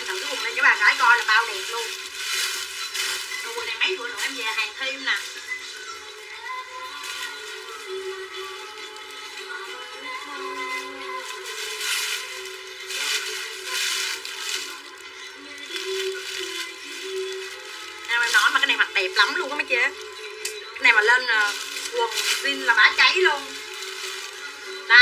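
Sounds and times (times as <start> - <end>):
background music with held notes: 0.0 - 25.0.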